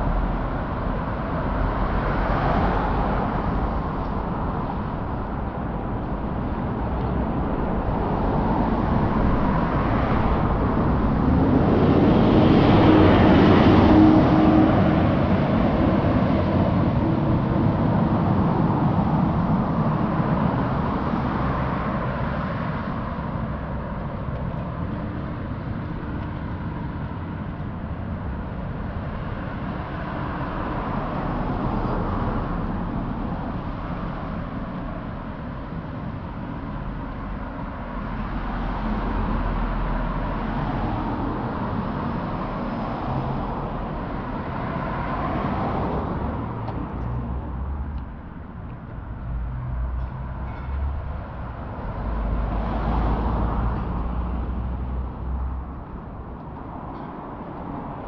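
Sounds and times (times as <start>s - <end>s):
passing cars: 0.0s - 58.0s
vehicle engine hum and tyre noise: 0.0s - 58.0s.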